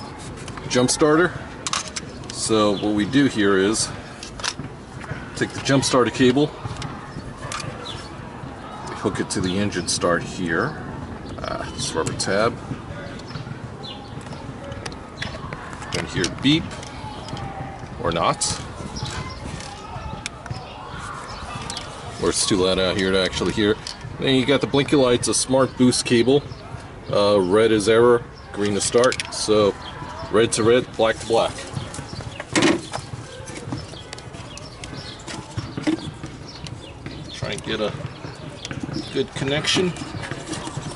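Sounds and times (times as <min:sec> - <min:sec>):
birds chirping: 0:00.0 - 0:40.9
outdoor background noise: 0:00.0 - 0:40.9.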